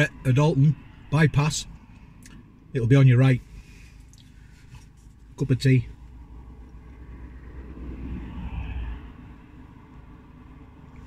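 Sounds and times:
muffled road traffic rumble: 0.0 - 11.0
vehicle approaching: 5.9 - 11.0.

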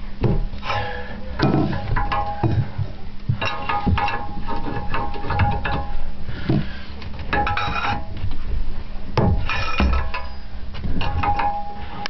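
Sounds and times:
steady low hum: 0.0 - 12.0
metal pipe ringing: 0.6 - 6.2, 7.3 - 8.2, 9.2 - 12.0.

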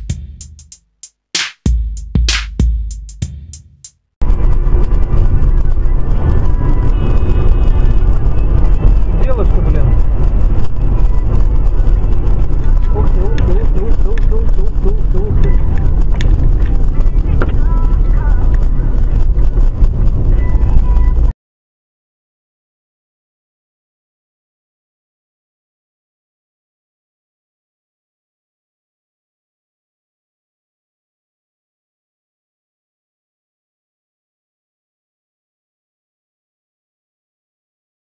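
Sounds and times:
music inside car: 0.0 - 4.0, 5.2 - 21.3
car driving low rumble: 4.2 - 21.3
voices inside car: 4.8 - 21.3.

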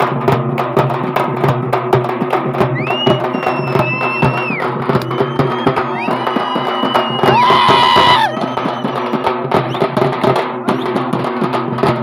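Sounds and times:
frame drums beaten with sticks: 0.0 - 12.0.

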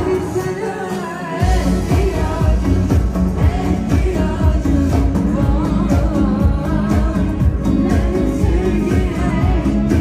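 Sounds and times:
band with steady drum beat: 0.0 - 10.0
woman singing pop song: 0.0 - 10.0.

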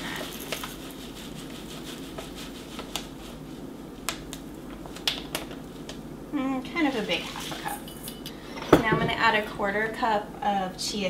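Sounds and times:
utensils clattering in metal bowl: 7.0 - 9.5.

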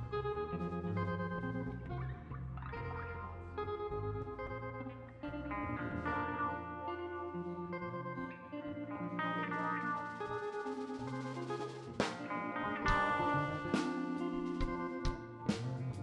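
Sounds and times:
electric guitar ringing chords: 0.0 - 16.0
low sustained notes: 0.0 - 16.0
rock band playing: 3.1 - 16.0.

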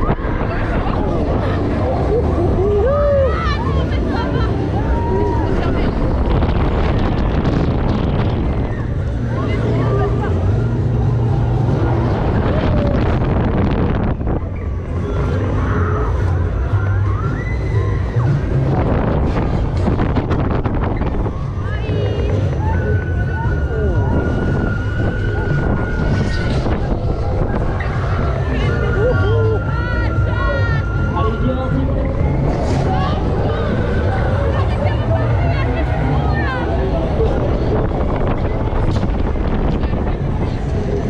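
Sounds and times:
riders screaming and shouting: 0.0 - 7.0, 14.4 - 19.4, 20.8 - 41.0
wind buffeting microphone: 0.0 - 41.0.

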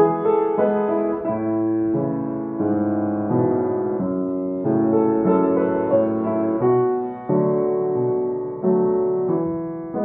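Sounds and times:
upright piano chords: 0.0 - 10.0.

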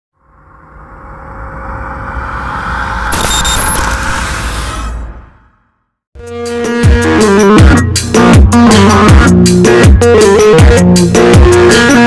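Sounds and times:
whoosh with deep rumble: 0.2 - 6.0.

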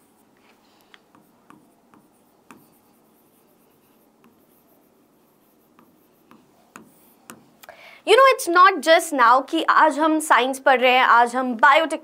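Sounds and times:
pen tapping on a board: 1.1 - 2.8, 5.7 - 7.5.

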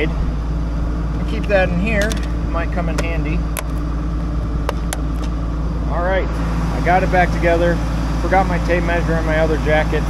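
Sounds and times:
engine idling with low hum: 0.0 - 10.0.

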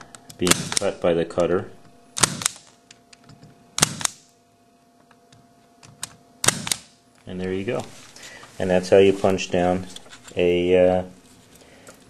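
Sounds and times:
punch-down tool snapping: 0.3 - 0.9, 2.2 - 2.8, 3.8 - 4.3, 6.0 - 7.0.

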